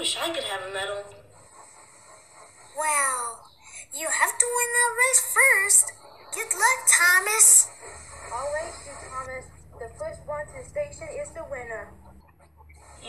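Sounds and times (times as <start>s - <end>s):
voices talking: 0.0s - 12.2s
low steady hum: 0.0s - 13.0s.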